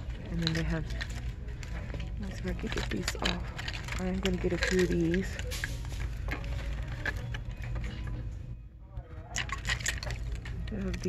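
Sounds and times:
plastic ornaments clicking and rattling: 0:00.0 - 0:08.4, 0:09.1 - 0:11.0
low store hum: 0:00.0 - 0:11.0.

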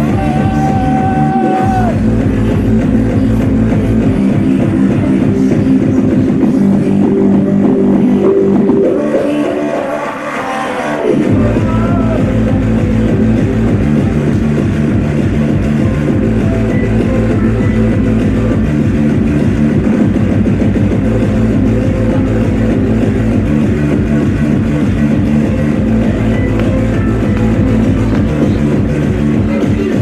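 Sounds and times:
steady kick-drum beat: 0:00.0 - 0:08.9, 0:11.2 - 0:30.0
hardcore electronic dance music: 0:00.0 - 0:30.0.

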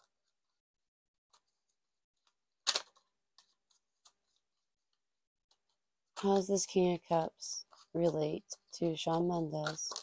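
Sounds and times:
cards shuffling: 0:02.3 - 0:04.4, 0:07.7 - 0:10.0.

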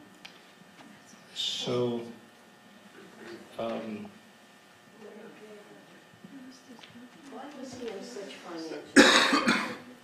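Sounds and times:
person coughing: 0:09.0 - 0:09.9.

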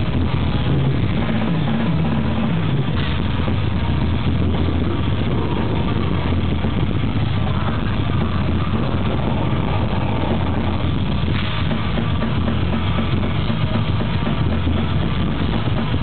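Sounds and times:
distorted guitars: 0:00.0 - 0:16.0
fast drumming: 0:00.0 - 0:16.0.

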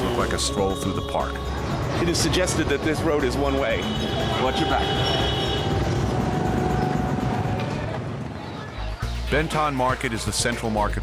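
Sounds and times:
high steady tone: 0:00.0 - 0:08.0
motorbike and scooter traffic: 0:00.0 - 0:09.2.

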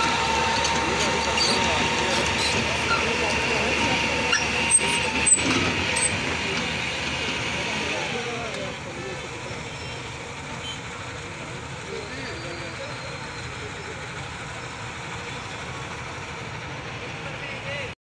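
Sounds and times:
indistinct voices: 0:00.0 - 0:18.0
road traffic rumble: 0:00.0 - 0:18.0.

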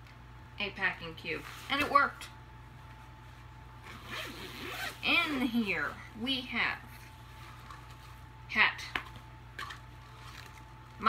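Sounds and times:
fabric zipper being pulled open: 0:03.8 - 0:05.4.

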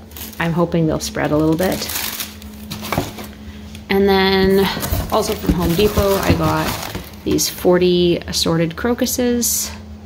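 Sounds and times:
paper packets rustling: 0:00.0 - 0:00.6, 0:01.2 - 0:03.4, 0:04.5 - 0:07.6.

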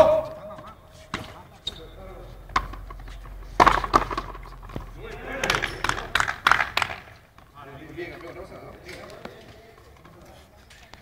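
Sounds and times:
ball hitting wall and floor: 0:00.0 - 0:07.5
ball struck by rackets: 0:02.4 - 0:07.5.

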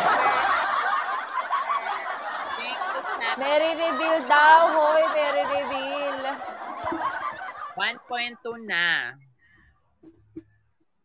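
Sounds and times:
people laughing: 0:00.0 - 0:09.2.

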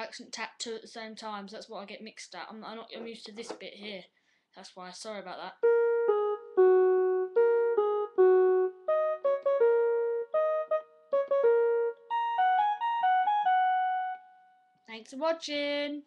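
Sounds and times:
electronic keyboard simple tune: 0:05.6 - 0:14.7.

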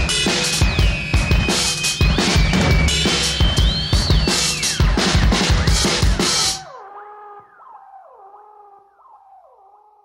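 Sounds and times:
drums: 0:00.0 - 0:06.8
synthesizer sustained sliding tones: 0:04.3 - 0:10.0.

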